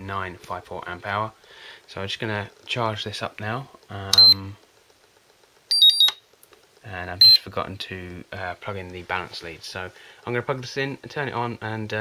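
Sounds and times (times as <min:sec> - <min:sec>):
high-pitched charger beeps: 0:04.1 - 0:04.5, 0:05.7 - 0:06.2, 0:07.2 - 0:07.4.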